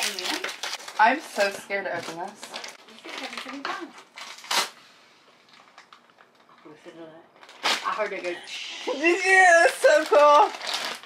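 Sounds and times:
plastic rustling: 0.0 - 11.0.

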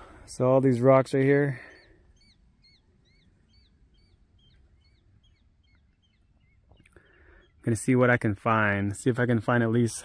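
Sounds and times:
bird chirping: 0.3 - 9.3.

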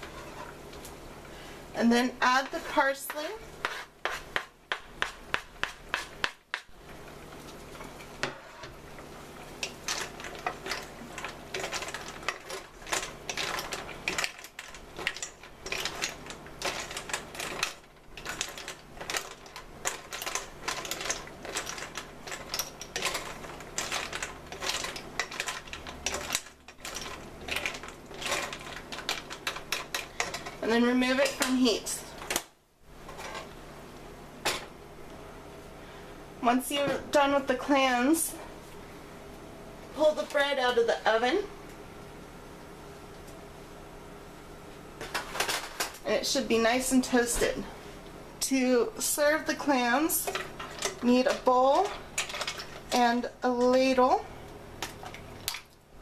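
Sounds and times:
clam shells clattering in pot: 9.5 - 31.6, 49.0 - 54.0.

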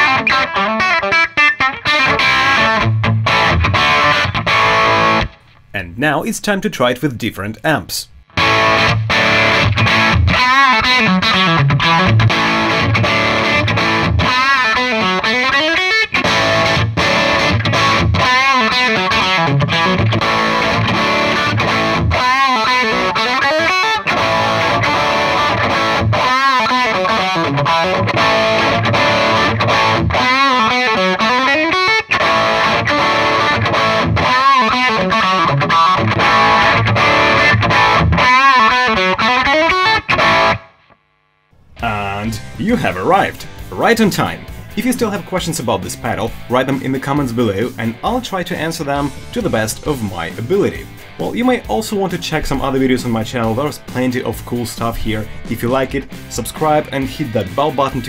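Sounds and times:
distorted electric guitar riff: 0.0 - 6.7, 8.0 - 58.0.

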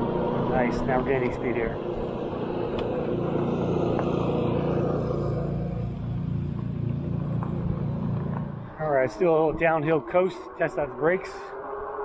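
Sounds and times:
tyre and motor hum: 0.0 - 12.0.

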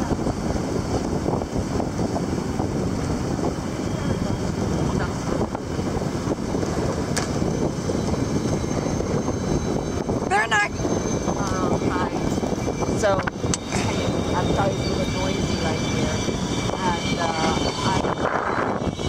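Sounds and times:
water rushing along hull: 0.0 - 19.0
wind buffeting microphone: 0.0 - 19.0.

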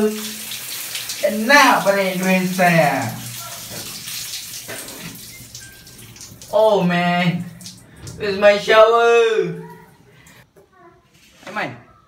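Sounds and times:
shower water spraying on tiles: 0.0 - 8.2.

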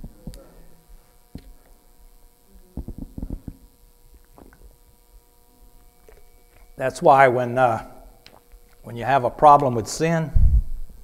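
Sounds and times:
faint steady hum: 0.0 - 11.0
man gulping and swallowing: 2.7 - 4.8.

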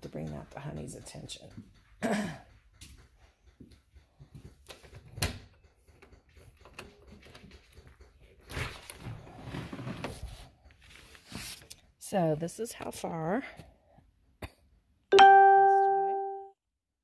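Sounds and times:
knocks and clicks: 0.0 - 8.5.

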